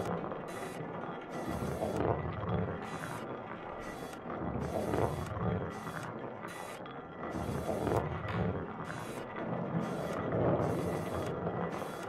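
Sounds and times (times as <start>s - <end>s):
machine clicking and whirring: 0.0s - 12.0s.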